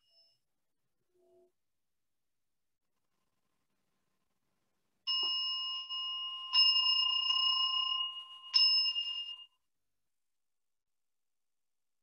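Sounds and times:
altar bowl bell ringing: 0:05.1 - 0:09.6.

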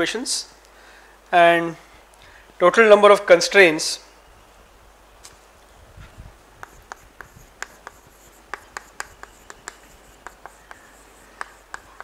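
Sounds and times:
chalk tapping on a blackboard: 0:06.6 - 0:12.0.

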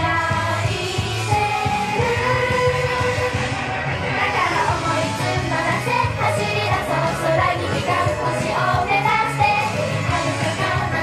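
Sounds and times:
upbeat pop song with steady beat: 0:00.0 - 0:11.0.

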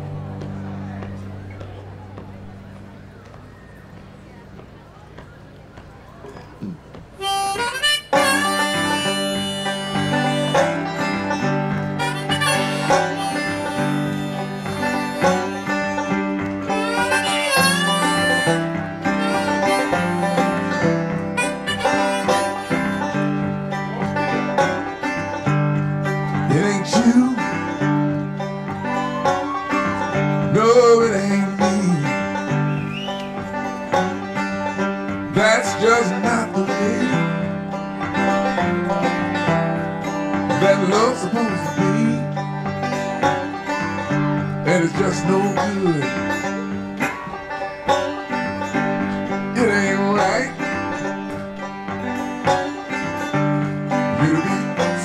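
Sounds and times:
banjo picking: 0:00.0 - 0:03.4, 0:06.4 - 0:55.0
guitar: 0:00.0 - 0:55.0
harmonica: 0:06.6 - 0:55.0.

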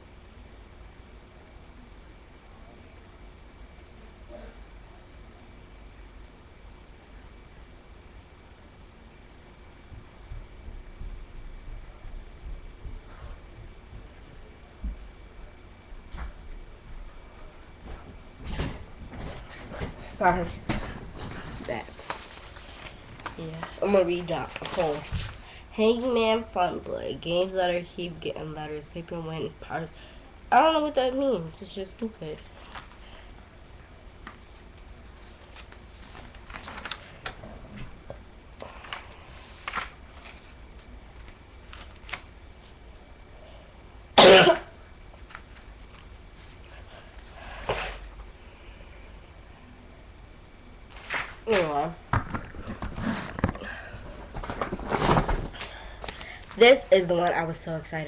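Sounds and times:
person coughing: 0:44.2 - 0:44.8.

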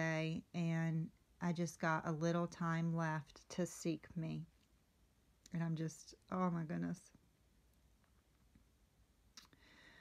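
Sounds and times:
faint intake of breath: 0:09.6 - 0:10.0.

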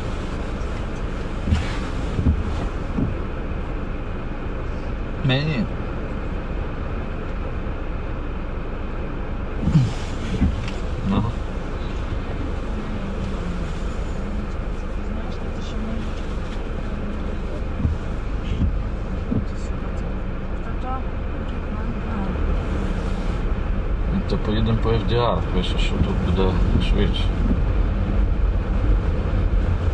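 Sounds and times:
car idling: 0:00.0 - 0:29.9
city traffic: 0:00.0 - 0:29.9.

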